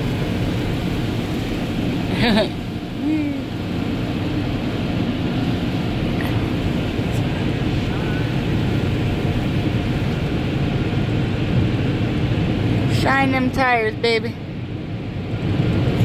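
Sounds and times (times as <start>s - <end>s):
car wash water spray and scrubbing: 0.0s - 16.0s.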